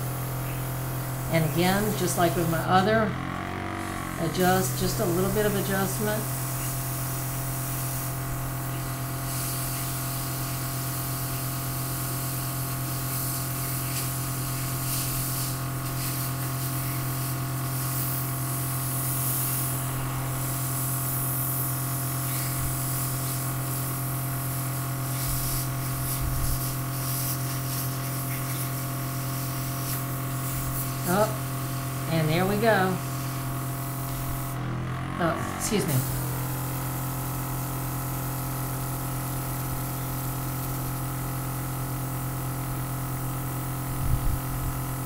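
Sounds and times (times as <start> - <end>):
airbrush spraying hiss: 0.0 - 2.8, 3.8 - 34.6, 35.9 - 45.0
compressor humming: 0.0 - 45.0.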